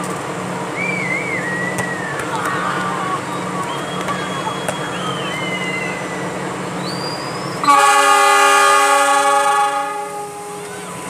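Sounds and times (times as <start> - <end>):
locomotive horn blast: 7.6 - 10.9.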